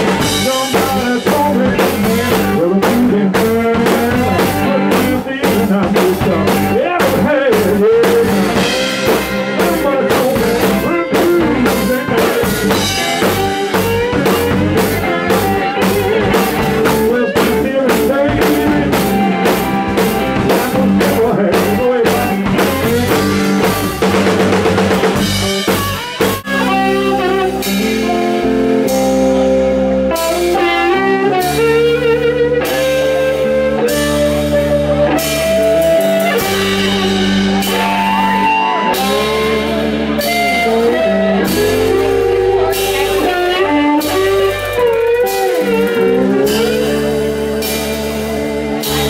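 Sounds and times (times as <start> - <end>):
drum hits: 0.0 - 26.9, 35.3 - 49.0
bass: 0.0 - 49.0
held electric guitar notes: 0.0 - 49.0
live rock band playing: 0.0 - 49.0.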